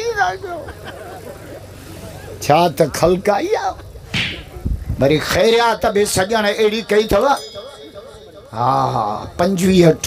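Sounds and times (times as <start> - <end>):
man speaking into a microphone: 5.0 - 7.5, 8.6 - 10.0.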